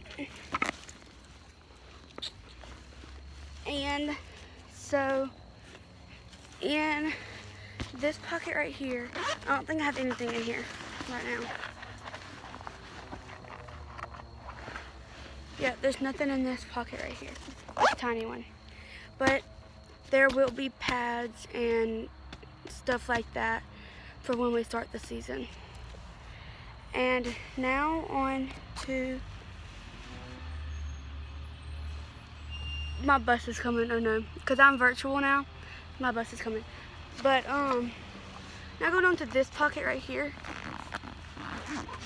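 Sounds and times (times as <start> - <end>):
bus engine rumbling: 0.0 - 18.6.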